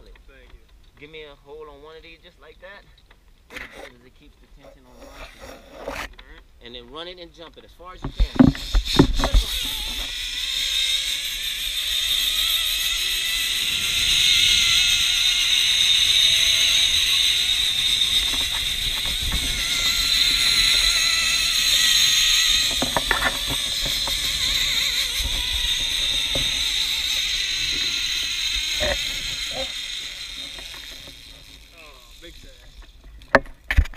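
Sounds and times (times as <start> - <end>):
zipline pulleys whirring on cable: 8.0 - 33.4
pulley clicks: 8.1 - 33.9.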